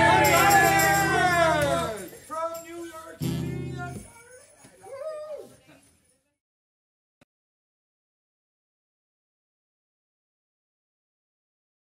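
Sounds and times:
band music: 0.0 - 2.1, 3.2 - 4.0.

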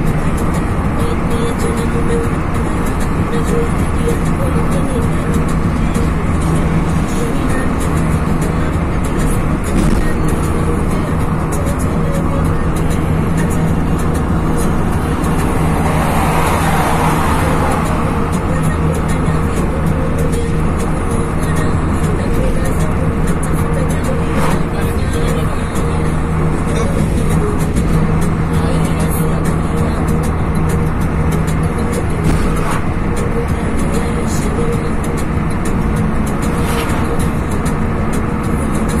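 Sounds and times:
car engine and tyre drone: 0.0 - 39.0
music on car stereo: 0.0 - 39.0
passing lorry rush: 0.0 - 39.0.

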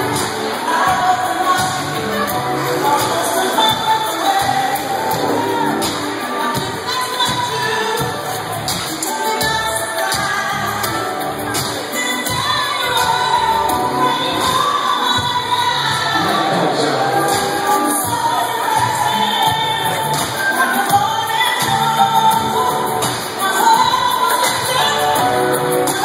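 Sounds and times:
music with singing over loudspeakers: 0.0 - 26.0.

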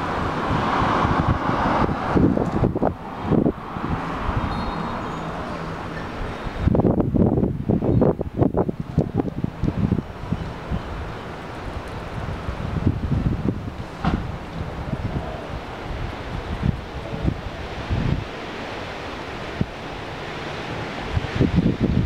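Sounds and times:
wind buffeting microphone: 0.0 - 22.0
wind rustling leaves: 0.0 - 22.0.

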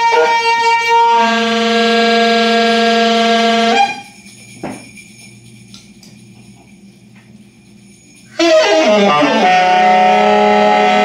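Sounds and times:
steady high horn-like tone: 0.0 - 4.3, 8.0 - 11.0
low buzzy held chord: 0.0 - 5.6, 7.8 - 11.0.

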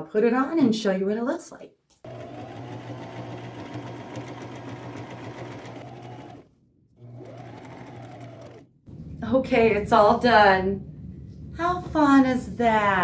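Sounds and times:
electric sewing machine running: 2.0 - 8.7.

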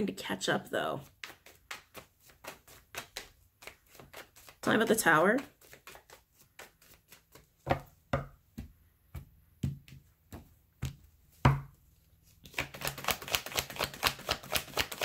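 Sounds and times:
cards being shuffled: 1.0 - 8.0, 12.1 - 15.0.

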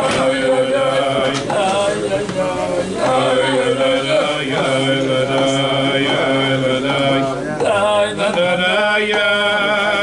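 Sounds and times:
men singing wordless melody: 0.0 - 10.0.

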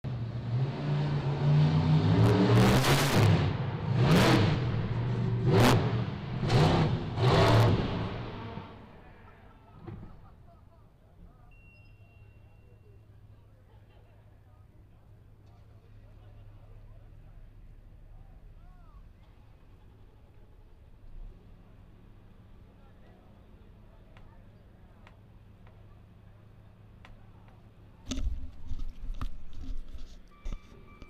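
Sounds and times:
truck engine revving: 0.1 - 9.0.

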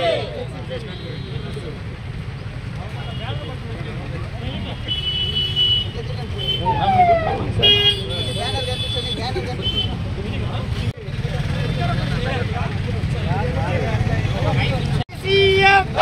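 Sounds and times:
crowd chatter: 0.0 - 16.0
vehicle horns honking: 0.8 - 1.7, 4.5 - 6.9, 7.6 - 10.1.

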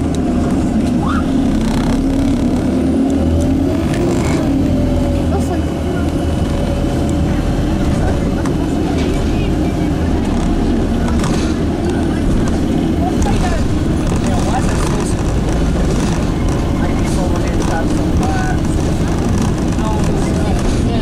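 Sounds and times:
bus engine droning with whine: 0.0 - 21.0.

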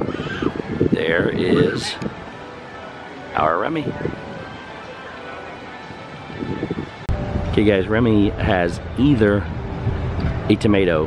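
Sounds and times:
faint voice: 0.0 - 2.1
outdoor background noise: 0.0 - 11.0.

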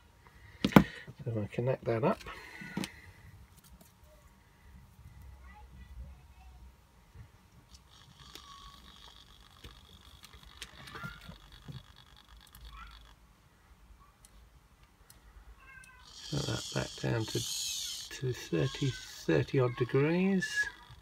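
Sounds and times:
servo whine: 16.0 - 19.4.

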